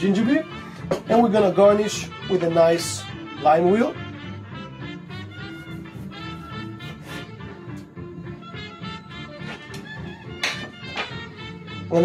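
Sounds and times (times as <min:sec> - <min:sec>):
swing music with brass: 0:00.0 - 0:12.0.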